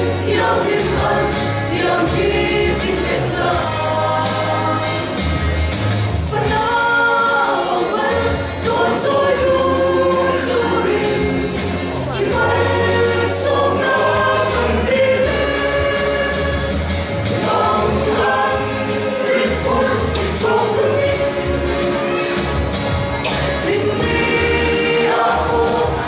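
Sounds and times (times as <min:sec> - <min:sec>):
mixed choir singing: 0:00.0 - 0:05.6, 0:06.3 - 0:26.0.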